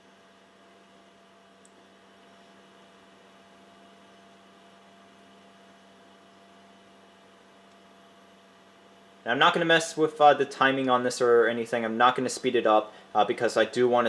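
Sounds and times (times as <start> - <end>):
electrical hum: 0.0 - 14.0.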